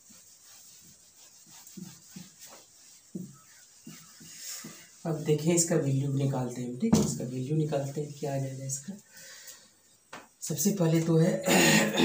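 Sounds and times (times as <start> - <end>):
whiteboard squeaking rubs: 0.0 - 6.2.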